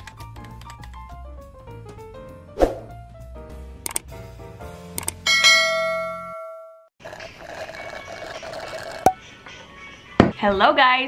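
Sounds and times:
mouse clicks: 3.9 - 4.1
bright bell ding: 5.3 - 6.9.

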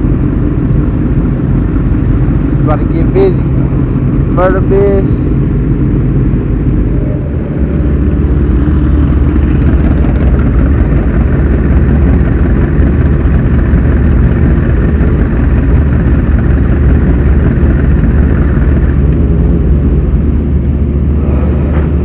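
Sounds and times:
motorcycle engine running: 0.0 - 22.0.

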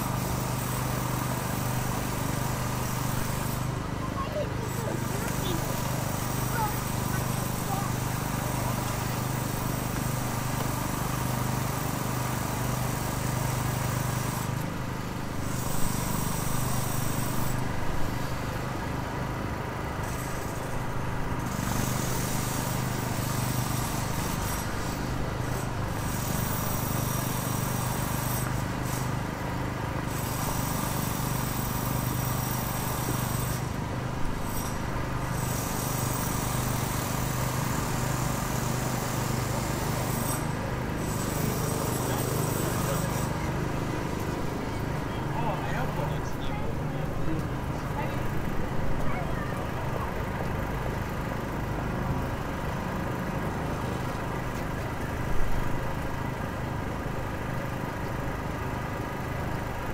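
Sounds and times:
traffic noise: 0.0 - 59.9.

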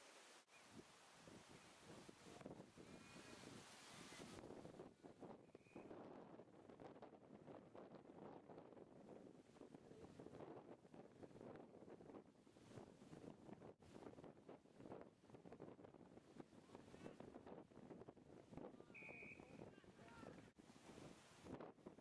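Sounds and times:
wind buffeting microphone: 0.7 - 22.0.

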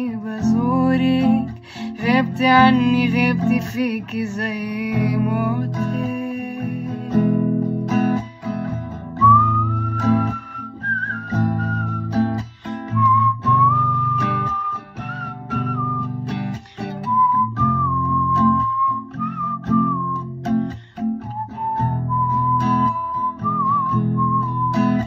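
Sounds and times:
strummed acoustic guitar: 0.0 - 25.0
person whistling a melody: 8.6 - 25.0.

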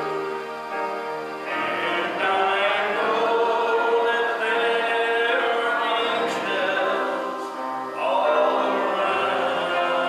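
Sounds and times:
group singing a slow hymn: 1.4 - 10.0.

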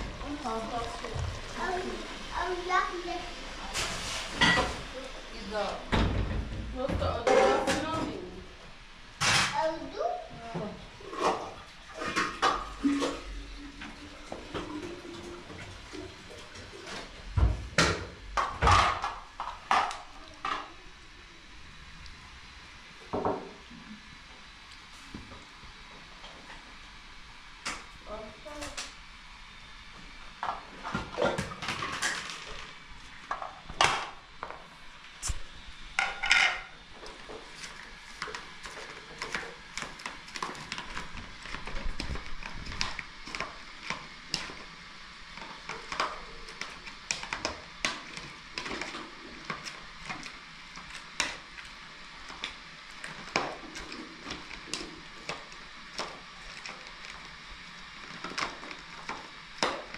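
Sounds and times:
dishes and utensils clinking: 3.7 - 4.8, 7.2 - 8.0, 36.0 - 36.7.

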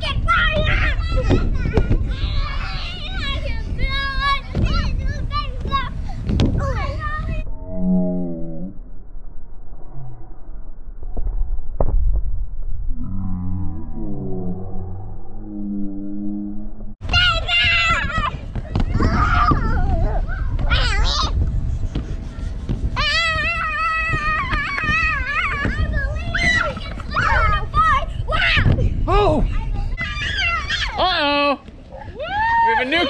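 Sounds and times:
low rumble: 0.0 - 30.7
low steady pitched tone: 7.4 - 17.8
children shouting: 17.1 - 21.3, 23.0 - 28.7, 30.0 - 31.0
children squealing: 30.0 - 31.0.

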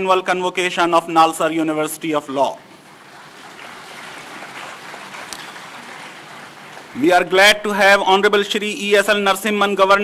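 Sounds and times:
audience applauding: 2.8 - 7.0.

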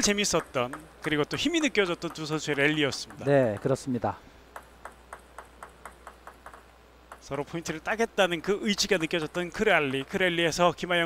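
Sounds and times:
table tennis ball bouncing: 0.0 - 7.8, 8.8 - 10.7.

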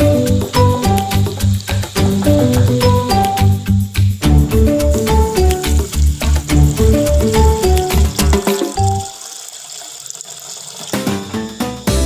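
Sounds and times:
water pouring into a metal pot: 0.0 - 3.4, 4.4 - 11.8
background music with steady beat: 0.0 - 9.1, 11.0 - 12.0.

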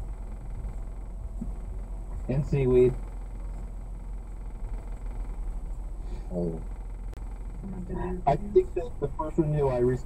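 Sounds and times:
car cabin engine and road noise: 0.0 - 10.0.

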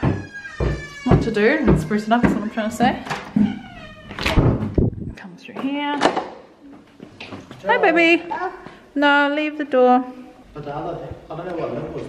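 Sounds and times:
door hinge squeak: 0.0 - 4.8
door and latch knocks: 0.0 - 4.9.

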